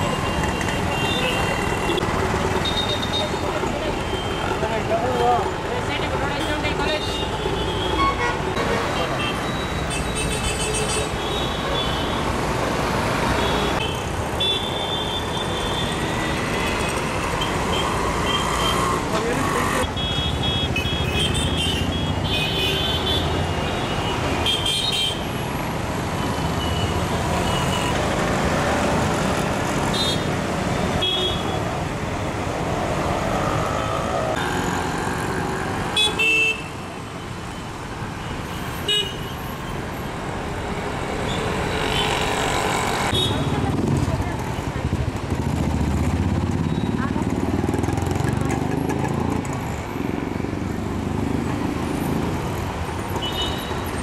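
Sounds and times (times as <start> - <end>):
traffic engine din: 0.0 - 54.0.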